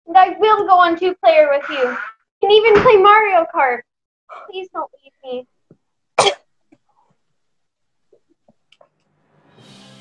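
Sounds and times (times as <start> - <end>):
person coughing: 6.2 - 6.5.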